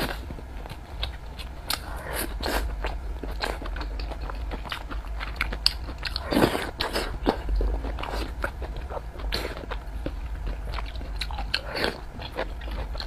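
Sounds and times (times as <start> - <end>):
mouth chewing food: 0.0 - 13.0.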